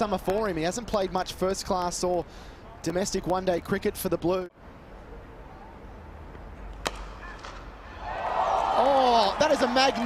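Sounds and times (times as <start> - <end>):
cricket bat hitting ball: 6.8 - 7.7
crowd cheering and applause: 7.9 - 10.0.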